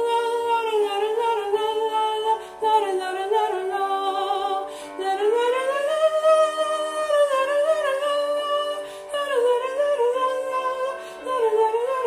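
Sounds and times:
woman singing wordless melody: 0.0s - 12.0s.

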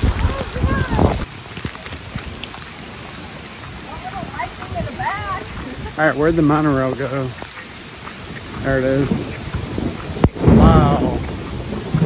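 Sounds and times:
heavy rain on pavement: 0.0s - 12.0s
wind buffeting microphone: 0.0s - 12.0s.

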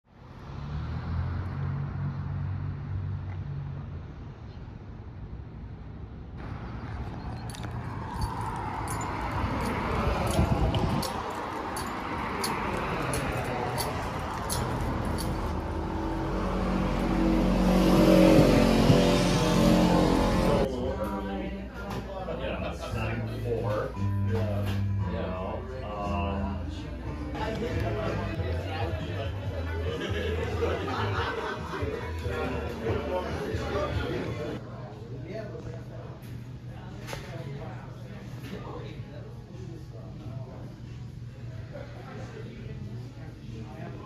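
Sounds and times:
vehicle engine hum: 0.1s - 20.8s.

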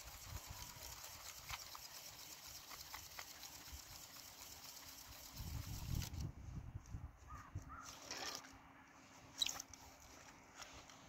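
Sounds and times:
gear clicking on ice: 0.0s - 6.2s
rustling fishing gear: 7.3s - 11.0s.

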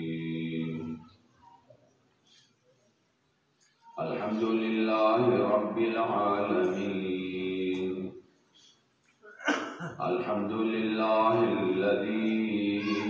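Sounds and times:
man chanting: 3.9s - 8.2s, 10.0s - 13.0s.

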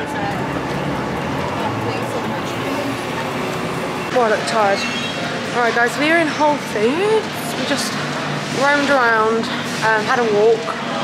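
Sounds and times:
passers-by talking: 0.0s - 11.0s
traffic noise: 0.0s - 11.0s.

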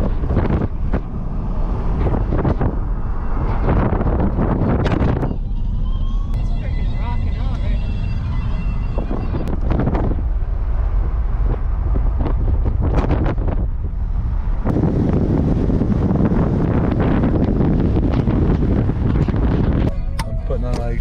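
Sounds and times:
low road rumble: 0.0s - 21.0s
wind buffeting microphone: 0.0s - 21.0s.

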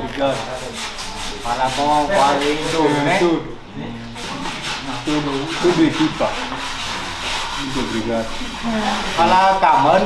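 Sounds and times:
scratchy rubbing noise: 0.0s - 10.0s
man speaking: 9.2s - 10.0s.

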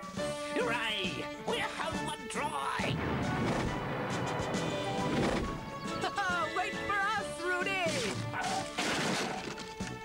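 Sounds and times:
background music with held notes: 0.0s - 10.0s
cartoon crash: 8.5s - 9.4s.

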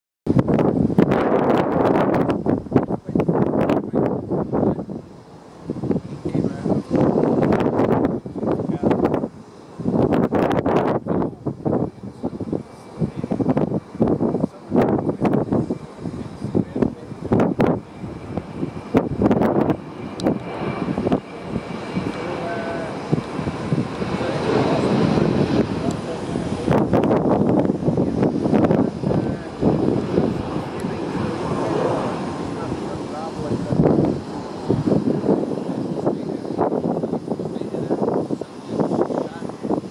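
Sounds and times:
choppy bursts of noise: 0.3s - 39.9s
jet engines at takeoff thrust: 0.3s - 39.9s.

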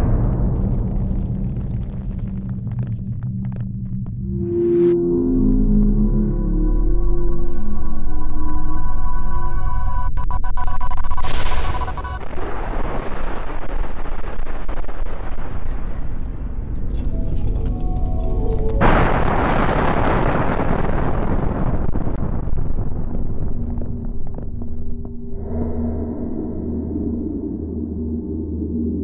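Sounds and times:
steel tower collapsing: 0.0s - 3.8s, 11.3s - 24.6s.

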